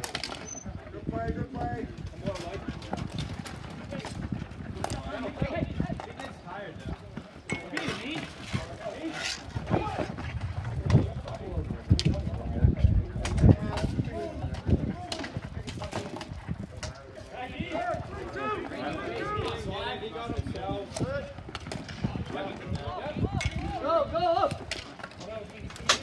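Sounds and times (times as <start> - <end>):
hockey sticks and ball clacking: 0.0 - 0.6, 2.2 - 6.4, 7.4 - 12.3, 13.2 - 17.0, 20.3 - 26.0
players shouting: 17.3 - 21.4.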